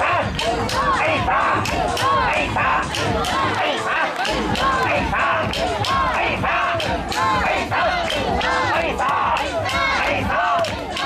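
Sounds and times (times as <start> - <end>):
crowd shouting a repeated call: 0.0 - 11.0.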